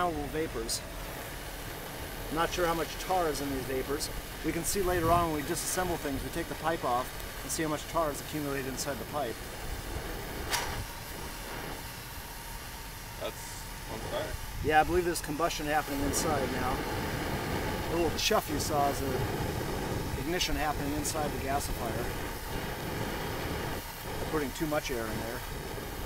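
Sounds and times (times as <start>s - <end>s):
propane torch burning: 0.0s - 26.0s
sharp gas ignition chuff: 0.0s - 26.0s.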